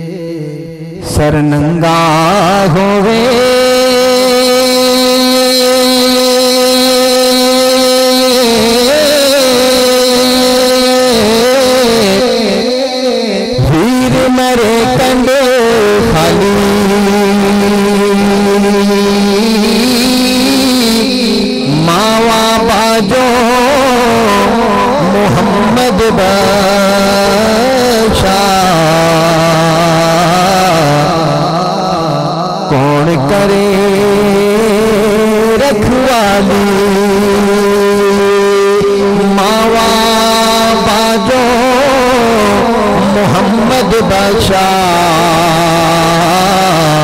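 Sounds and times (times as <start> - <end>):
man singing into a microphone: 0.0 - 47.0.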